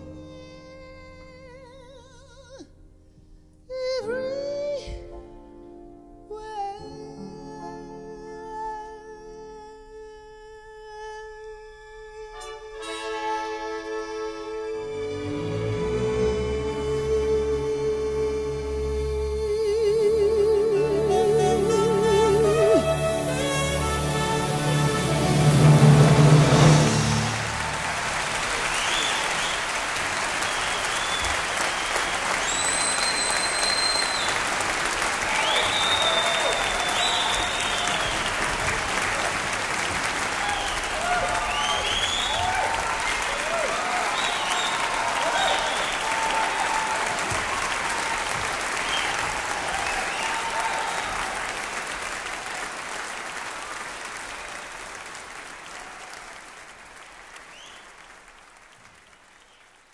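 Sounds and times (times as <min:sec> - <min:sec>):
audience clapping: 0:21.6 - 0:59.9
whistles and cheers: 0:27.0 - 0:38.8, 0:40.3 - 0:51.6, 0:57.4 - 0:58.2, 0:59.2 - 0:59.9.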